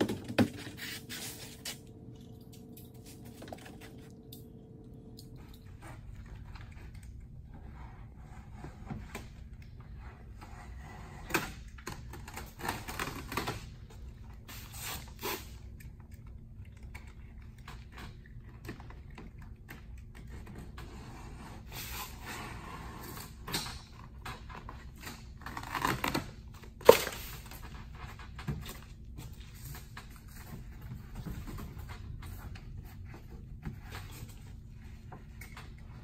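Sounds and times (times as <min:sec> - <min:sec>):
membrane rustling and crinkling: 0:24.0 - 0:36.0.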